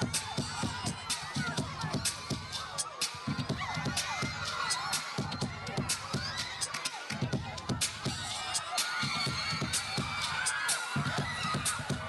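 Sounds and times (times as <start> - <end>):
crowd of fans screaming: 0.0 - 12.0.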